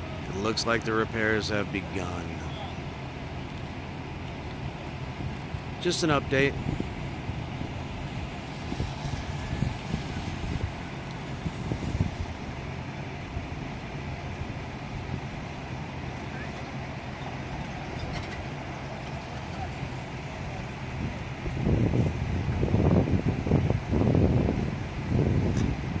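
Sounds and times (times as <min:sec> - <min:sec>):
diesel machinery humming: 0:00.0 - 0:26.0.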